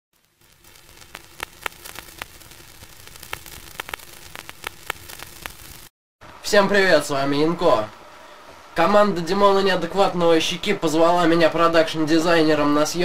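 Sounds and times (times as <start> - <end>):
sharp crackles and pops: 0.1 - 6.4
static hiss: 0.2 - 13.0.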